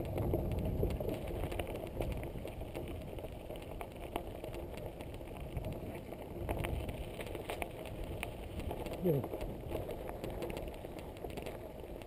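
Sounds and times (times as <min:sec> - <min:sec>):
bike clicks and knocks over bumps: 0:00.0 - 0:12.0
bike tyres rumbling on dirt: 0:00.0 - 0:12.0.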